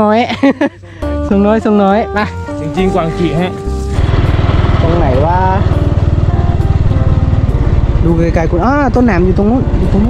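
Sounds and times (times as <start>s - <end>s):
small motorcycle engine running: 3.8s - 10.0s.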